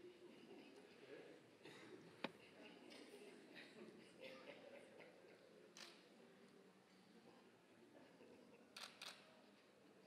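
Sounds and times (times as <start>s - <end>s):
camera shutter clicks: 8.8s - 9.2s.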